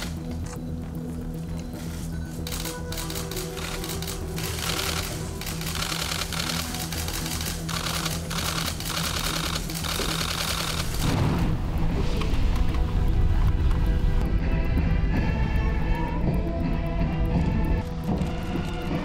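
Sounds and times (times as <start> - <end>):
background music with low notes: 0.0 - 19.0
rapid clatter of clicks: 2.4 - 11.1.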